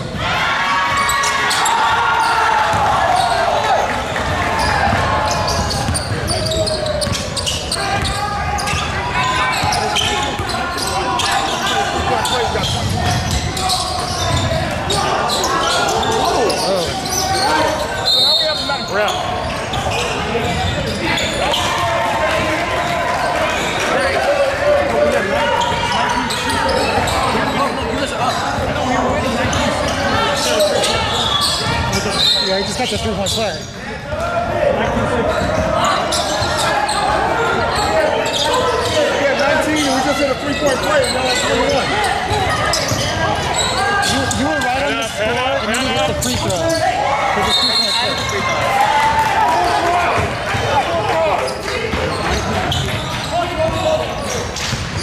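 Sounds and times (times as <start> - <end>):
voices calling: 1.0 - 54.5.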